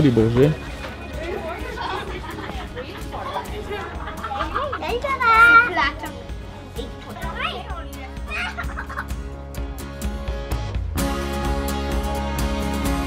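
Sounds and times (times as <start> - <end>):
background music: 0.0 - 13.0
children's voices: 1.2 - 9.0.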